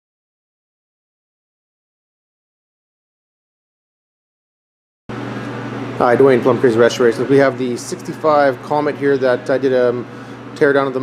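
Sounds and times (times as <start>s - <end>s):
machine hum with hiss: 5.1s - 11.0s.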